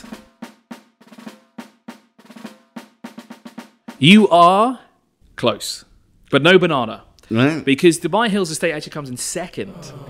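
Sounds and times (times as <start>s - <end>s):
drum roll: 0.0s - 4.4s.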